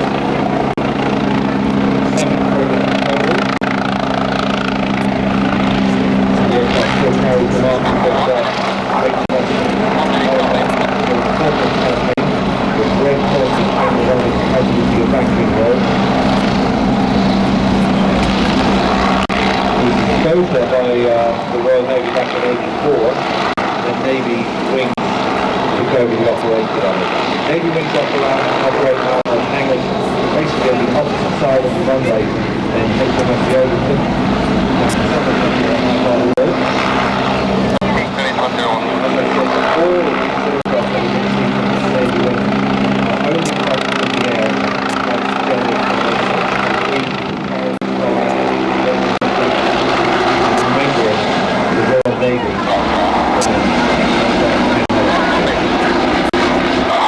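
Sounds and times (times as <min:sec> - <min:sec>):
helicopter drone: 0:00.0 - 0:57.0
low hum: 0:00.0 - 0:57.0
voices: 0:00.0 - 0:57.0.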